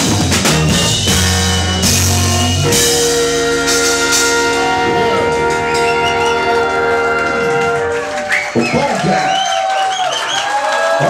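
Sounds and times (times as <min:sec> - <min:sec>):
ska band horn chord: 0:00.0 - 0:08.6.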